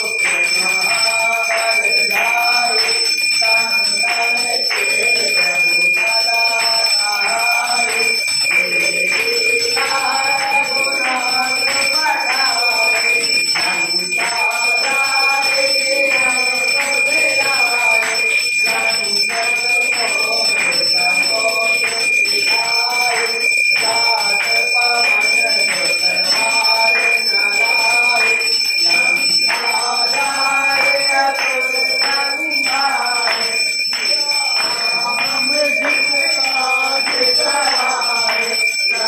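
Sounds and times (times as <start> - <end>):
temple bells ringing: 0.0 - 39.0
voices singing a hymn: 0.0 - 39.0.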